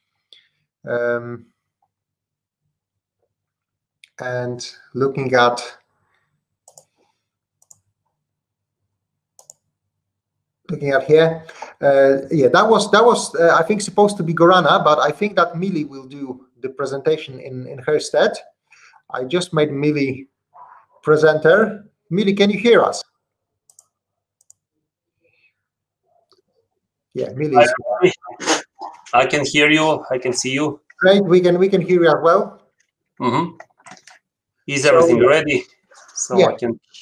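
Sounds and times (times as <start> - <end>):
faint clicks: 6.6 - 7.0, 7.6 - 7.9, 9.4 - 9.7, 23.7 - 24.7.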